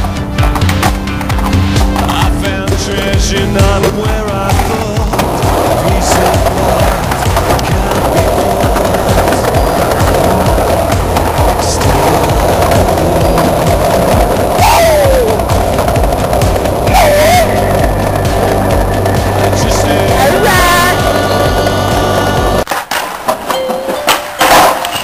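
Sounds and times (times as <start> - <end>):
music: 0.0 - 22.7
skateboard wheels rolling on concrete: 0.0 - 25.0.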